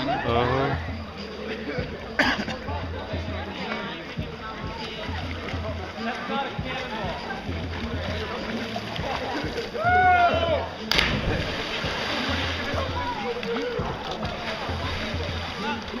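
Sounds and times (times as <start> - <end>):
onlookers chattering: 0.0 - 16.0
splash into water: 10.8 - 15.9.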